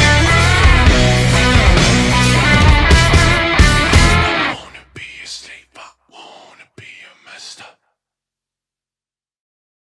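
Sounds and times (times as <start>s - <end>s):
person whispering: 4.4s - 8.0s.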